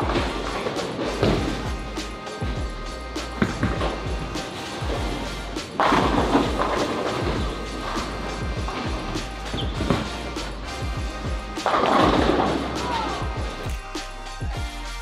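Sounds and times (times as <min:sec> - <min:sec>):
bowling ball striking pins: 0:00.0 - 0:02.6, 0:03.3 - 0:10.4, 0:11.6 - 0:13.4
background music: 0:00.0 - 0:15.0.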